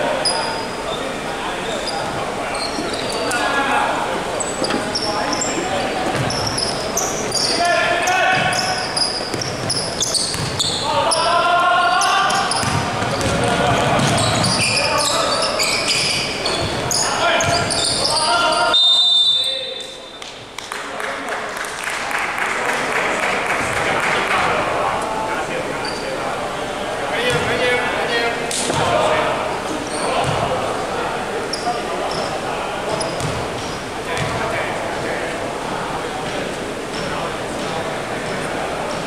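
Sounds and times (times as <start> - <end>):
sneakers squeaking: 0.0 - 3.8, 4.4 - 20.4, 25.8 - 26.2, 27.2 - 27.7, 28.5 - 34.5
players calling out: 0.0 - 20.0
basketball bouncing on wooden court: 6.1 - 6.7, 9.3 - 10.8, 12.3 - 14.7, 16.0 - 17.9, 30.2 - 30.5, 33.2 - 34.4.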